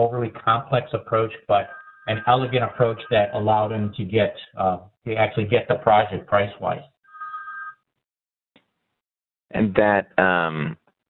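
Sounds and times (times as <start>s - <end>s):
short two-tone electronic beep: 1.6s - 3.7s.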